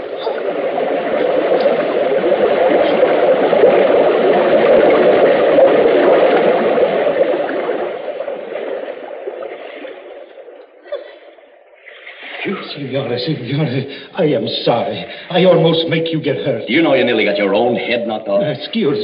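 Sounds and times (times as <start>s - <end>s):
water rushing: 0.0s - 19.0s.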